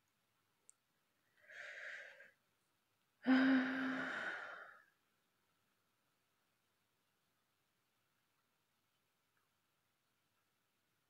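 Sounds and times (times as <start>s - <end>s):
woman sighing: 3.2s - 4.8s.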